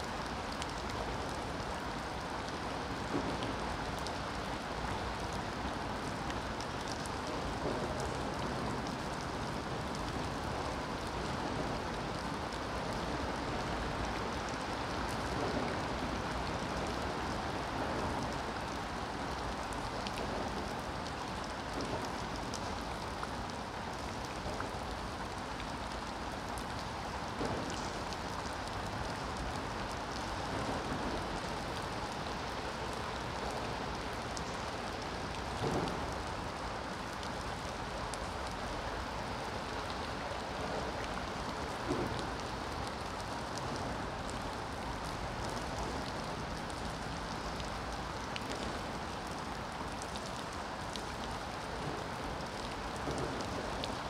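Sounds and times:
rain falling on river: 0.0s - 54.0s.

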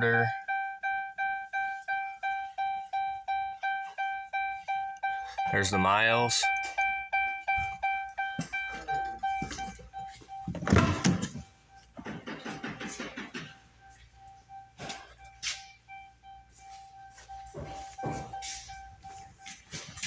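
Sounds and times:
car warning chime dinging: 0.0s - 20.0s
handling noises: 1.2s - 20.0s.

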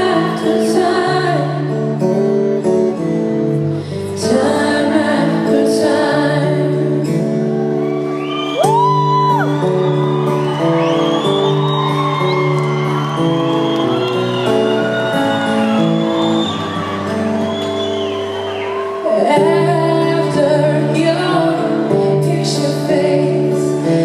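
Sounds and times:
acoustic guitar chords: 0.0s - 24.0s
crowd whooping and shouting: 7.4s - 19.6s.

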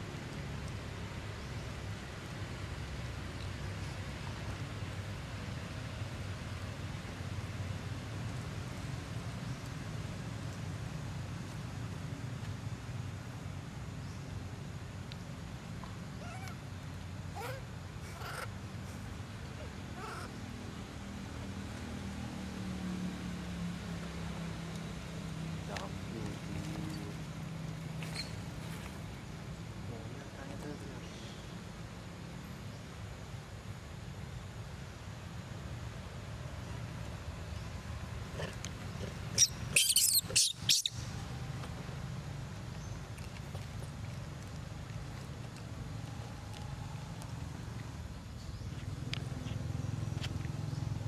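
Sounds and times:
monkey meow-like calls: 16.2s - 16.6s, 17.3s - 18.5s, 19.6s - 20.4s, 39.4s - 40.9s.

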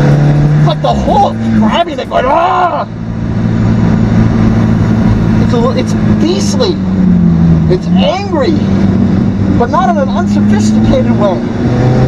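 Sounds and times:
car engine at steady revs: 0.0s - 12.0s
road and wind noise: 0.0s - 12.0s.

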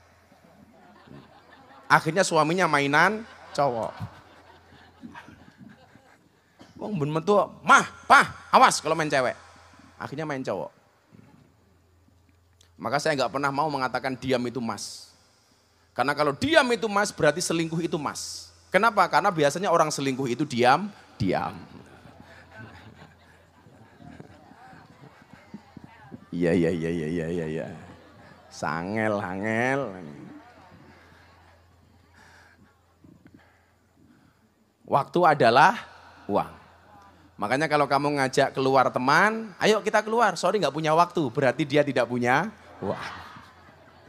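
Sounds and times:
audience laughing and murmuring: 0.0s - 7.3s, 8.9s - 17.5s, 18.8s - 34.8s, 35.6s - 44.0s
faint chuckling: 0.2s - 2.1s, 3.0s - 6.8s, 21.3s - 34.4s.

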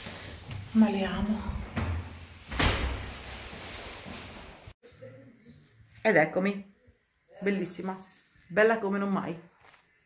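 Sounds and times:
door slamming shut: 1.8s - 3.2s.

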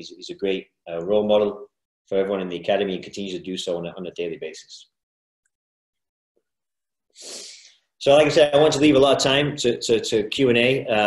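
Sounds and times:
man speaking: 0.0s - 5.0s, 8.0s - 11.0s
man breathing in: 7.1s - 7.9s.

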